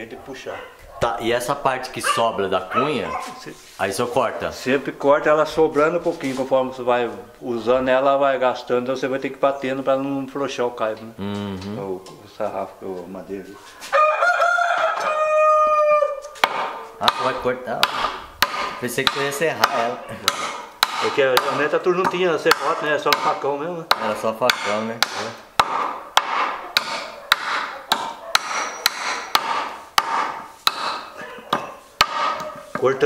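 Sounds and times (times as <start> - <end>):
rooster crowing: 13.8 - 16.4
machete chopping wood: 16.4 - 21.6, 22.5 - 31.1, 32.0 - 32.5.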